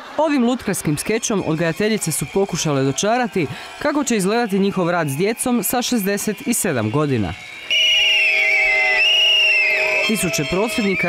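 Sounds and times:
pea whistles trilling: 5.1s - 11.0s.

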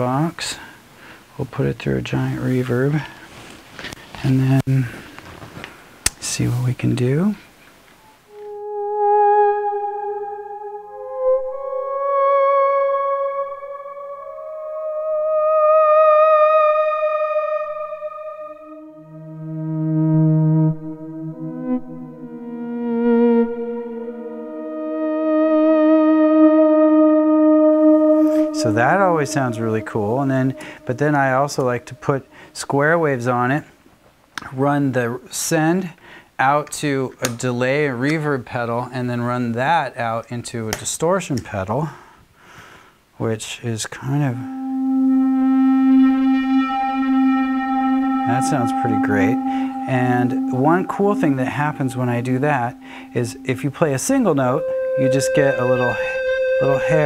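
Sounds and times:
synthesizer slow held notes: 8.1s - 33.0s, 44.1s - 57.0s.

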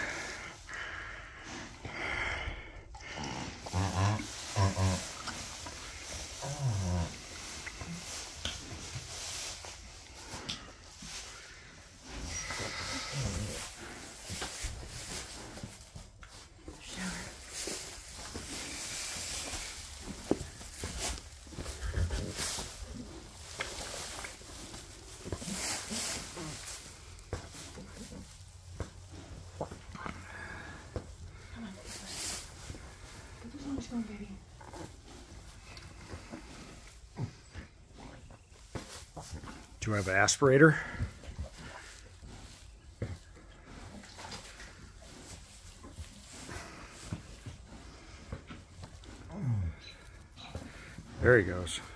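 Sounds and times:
straw rustling and crackling: 1.9s - 51.9s
low animal sounds: 12.2s - 14.0s.

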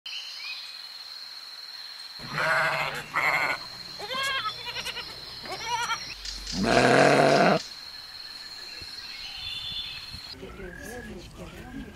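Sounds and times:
steady high-pitched whine: 2.2s - 6.8s
bird chirps: 3.0s - 11.2s.

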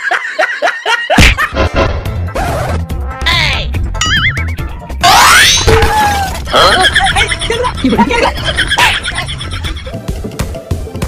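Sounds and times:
background music with steady beat: 6.7s - 11.0s.

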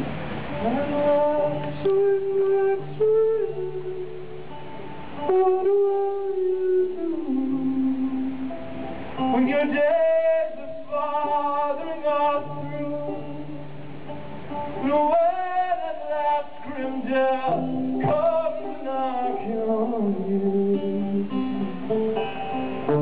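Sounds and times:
man singing with vibrato: 0.0s - 13.9s, 14.5s - 23.0s.

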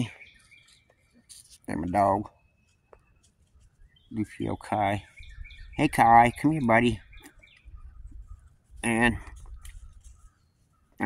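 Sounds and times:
faint bird chirps: 0.0s - 11.0s
man speaking: 1.6s - 2.3s, 4.1s - 5.1s, 5.8s - 7.0s, 8.8s - 9.4s.

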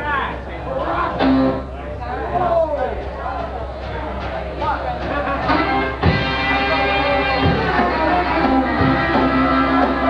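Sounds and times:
voices: 0.0s - 10.0s.

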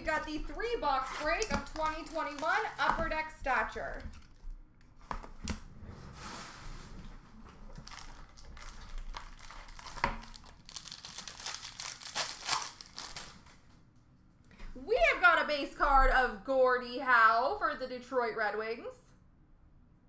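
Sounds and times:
card pack wrapper crinkling: 1.1s - 3.2s, 7.7s - 13.6s.

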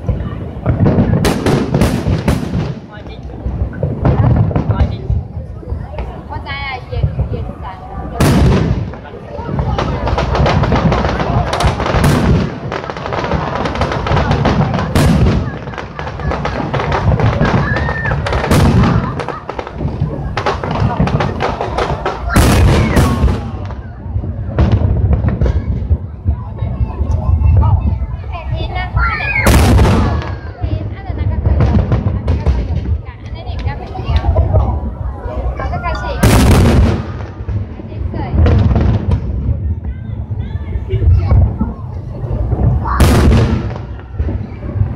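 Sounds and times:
dense firework crackling: 0.0s - 44.9s
sharp loud bangs: 8.2s - 23.8s, 29.4s - 30.6s, 36.2s - 39.5s, 42.5s - 44.6s
firework shells bursting: 8.2s - 23.9s, 29.4s - 30.8s, 36.1s - 39.5s, 42.4s - 44.6s.

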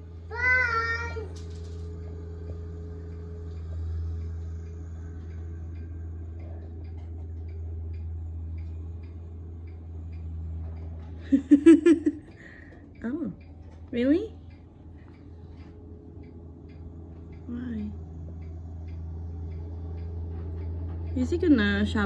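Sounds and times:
tractor engine running: 0.0s - 22.0s.

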